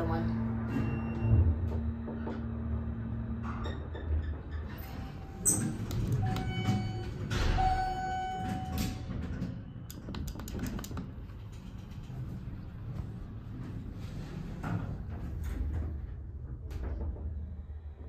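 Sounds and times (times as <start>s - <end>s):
elevator pump motor hum: 0.0s - 17.4s
elevator doors sliding: 0.0s - 18.0s.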